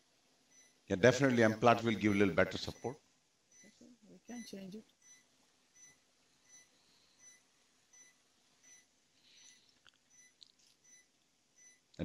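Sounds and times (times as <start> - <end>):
heart monitor beeps: 0.5 - 0.8, 1.4 - 11.9.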